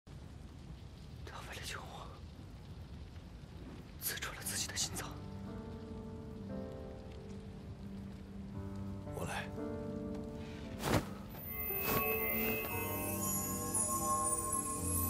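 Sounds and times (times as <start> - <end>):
steady ambient hiss: 0.1 - 15.0
soft music of long held notes: 2.6 - 15.0.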